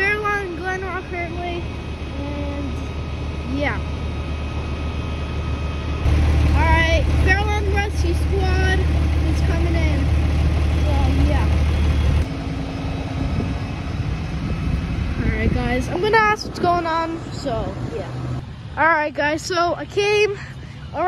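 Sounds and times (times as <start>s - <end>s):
people talking: 0.0s - 2.8s, 3.5s - 3.8s, 6.6s - 10.1s, 10.8s - 11.6s, 15.2s - 18.2s, 18.8s - 21.0s
fire truck engine idling: 0.0s - 17.7s.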